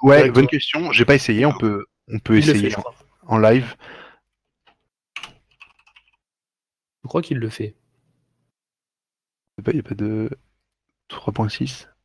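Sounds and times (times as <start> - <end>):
computer keyboard typing: 5.2 - 6.2.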